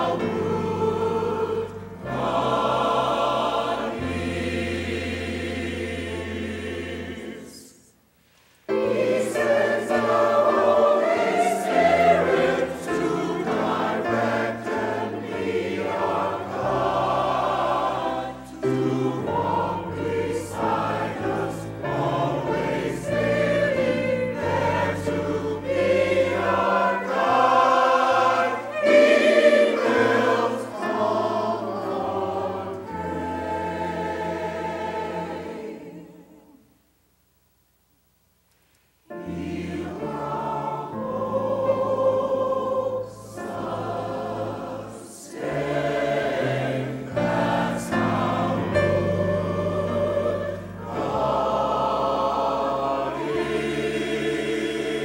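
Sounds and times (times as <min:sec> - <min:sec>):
church choir singing: 0:00.0 - 0:36.8, 0:39.0 - 0:55.0.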